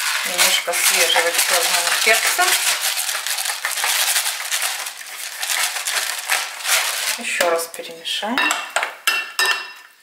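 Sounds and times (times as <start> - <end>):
pepper mill grinding peppercorns: 0.0 - 7.8.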